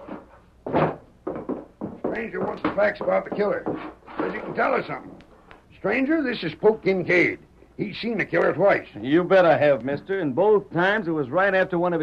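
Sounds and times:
footsteps thudding: 0.0 - 5.0.

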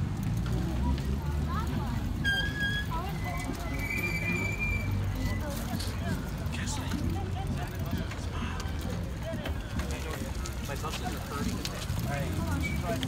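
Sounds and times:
rumble of wind and tyres: 0.0 - 13.0.

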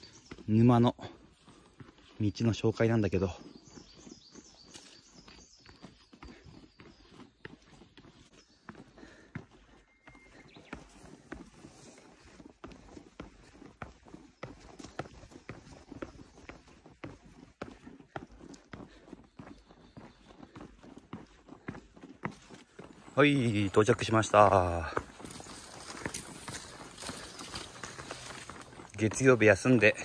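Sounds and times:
footsteps on wooden boards: 0.0 - 30.0.

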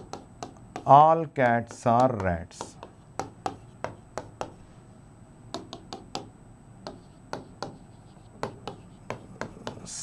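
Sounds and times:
marker writing on whiteboard: 0.0 - 4.7, 5.5 - 10.0.

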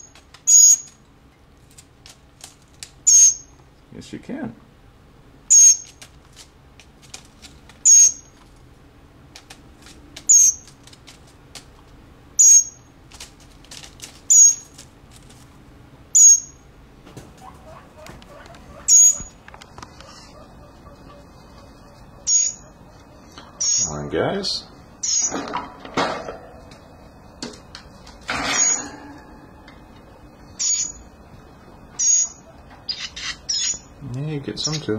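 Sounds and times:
young bird begging calls: 17.4 - 24.0.

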